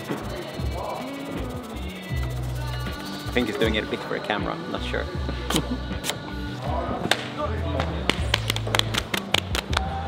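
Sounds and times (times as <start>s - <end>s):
background music with low beat: 0.0s - 10.0s
sharp hand slaps and claps: 7.0s - 10.0s.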